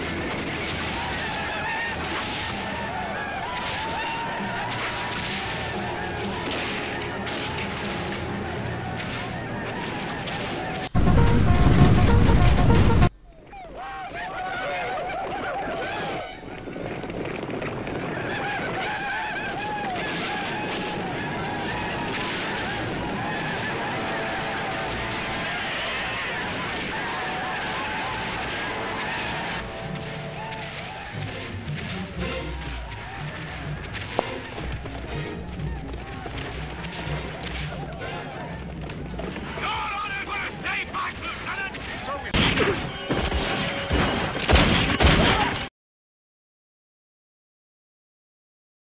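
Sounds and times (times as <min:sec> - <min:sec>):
film battle music: 0:00.0 - 0:13.2, 0:16.0 - 0:45.7
people yelling and crying: 0:00.7 - 0:10.9, 0:13.3 - 0:16.8, 0:17.8 - 0:44.2
loud burst: 0:10.9 - 0:13.1.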